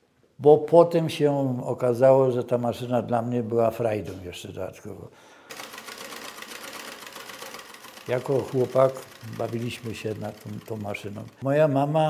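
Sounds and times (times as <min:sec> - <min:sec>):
sewing machine stitching paper: 0:05.5 - 0:11.4.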